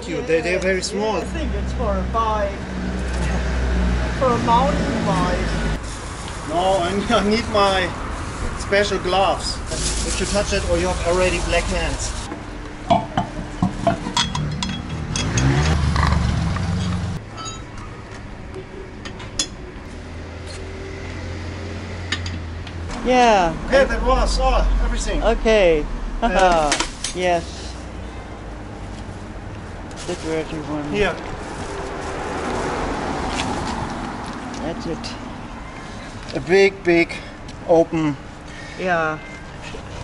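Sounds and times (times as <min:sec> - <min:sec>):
metal clinks of bolts and tools: 0:13.9 - 0:15.8, 0:17.3 - 0:17.8
car driving past: 0:20.2 - 0:29.2, 0:31.5 - 0:34.3
low rumble: 0:22.8 - 0:28.6.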